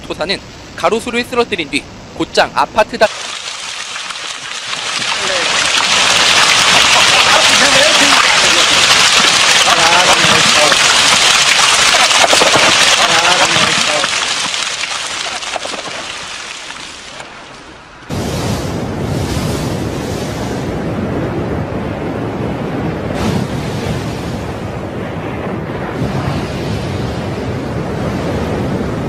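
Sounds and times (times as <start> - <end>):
running water: 3.0 - 18.1
heavy rain: 3.0 - 18.2.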